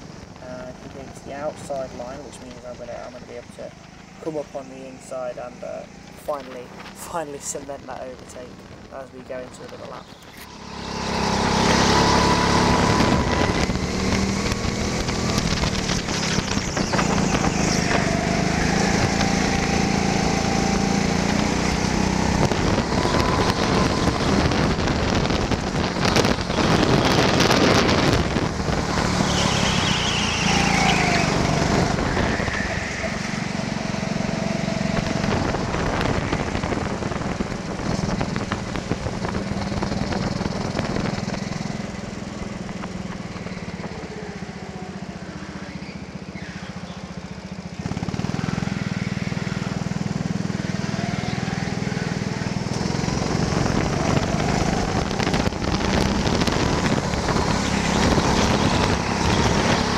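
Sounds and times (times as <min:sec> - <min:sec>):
go-kart engine running hard: 0:09.4 - 0:59.9.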